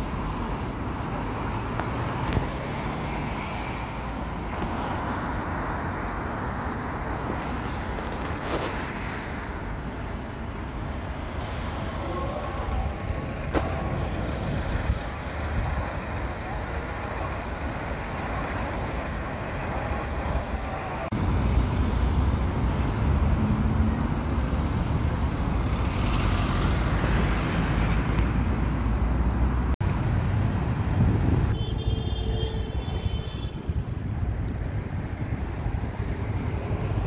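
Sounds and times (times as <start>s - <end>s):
vehicle engines idling and pulling away: 0.0s - 31.6s.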